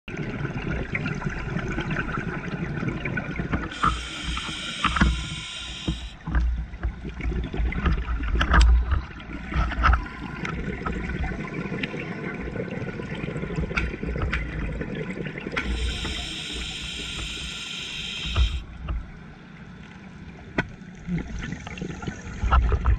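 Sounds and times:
exhaled air bubbling: 0:00.1 - 0:18.8
regulator inhalation hiss: 0:03.7 - 0:06.2, 0:15.6 - 0:18.7.

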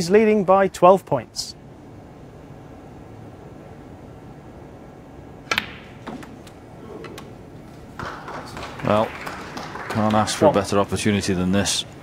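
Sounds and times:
snooker balls clicking: 0:05.4 - 0:10.5
balls knocking as they roll: 0:05.5 - 0:10.1.

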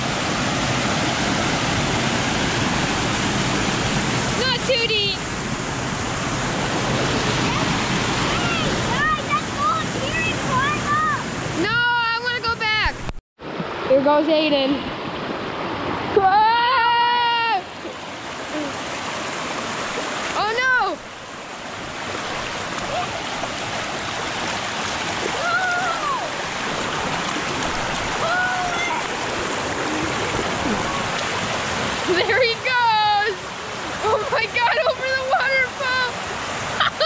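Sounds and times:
sled splashing down water: 0:00.0 - 0:11.2, 0:17.8 - 0:37.0
creek water rushing over rock: 0:00.0 - 0:37.0.

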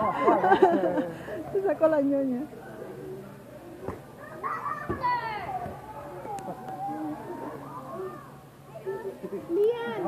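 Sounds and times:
children calling and squealing: 0:02.8 - 0:10.0
thump: 0:04.8 - 0:05.8.

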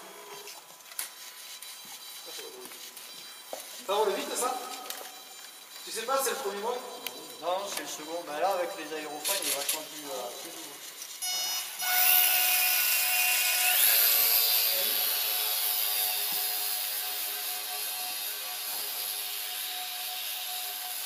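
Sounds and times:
small electric motor whining: 0:00.0 - 0:21.0.

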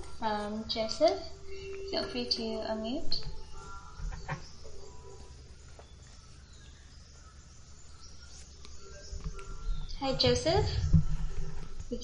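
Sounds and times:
distant bird chirps: 0:00.0 - 0:12.0
low steady hum: 0:00.0 - 0:12.0.

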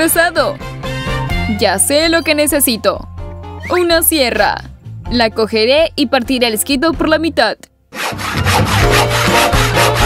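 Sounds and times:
coping saw rasping strokes: 0:08.0 - 0:10.0.

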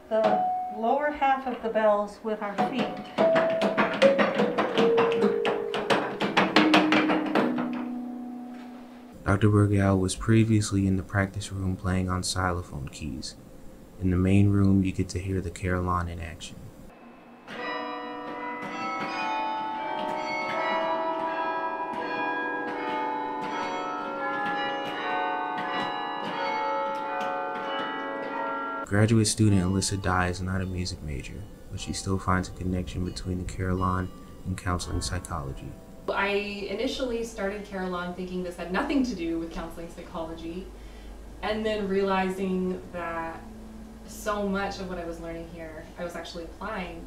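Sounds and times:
carillon bars ringing: 0:00.0 - 0:12.2, 0:16.7 - 0:47.0
wooden keys clattering: 0:17.6 - 0:28.8.

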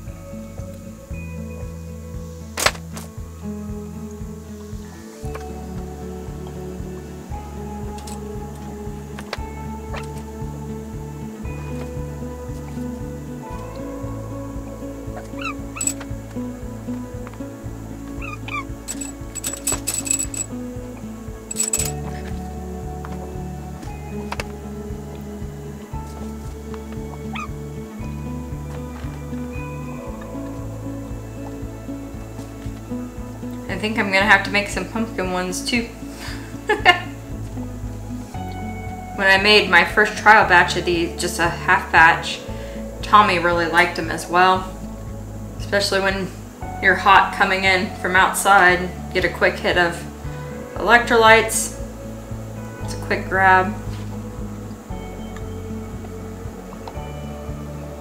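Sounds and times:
music with steady beat and bass: 0:00.0 - 0:58.0.

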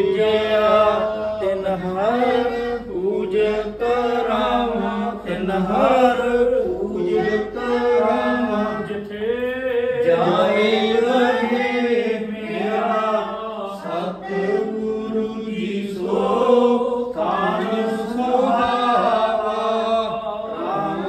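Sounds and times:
group of voices chanting a hymn: 0:00.0 - 0:21.0.

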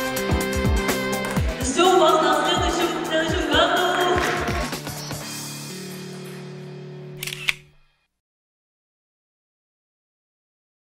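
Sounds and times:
background music held chord: 0:00.0 - 0:07.2
camera shutter click: 0:07.2 - 0:07.9.

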